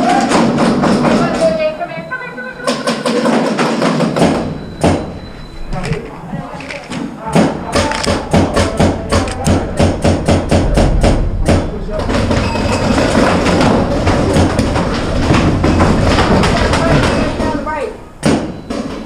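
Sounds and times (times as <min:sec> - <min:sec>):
dense steady din: 0:03.0 - 0:19.0.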